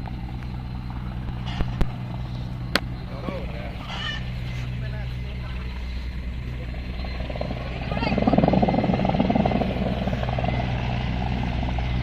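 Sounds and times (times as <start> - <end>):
distant helicopter drone: 0.0 - 12.0.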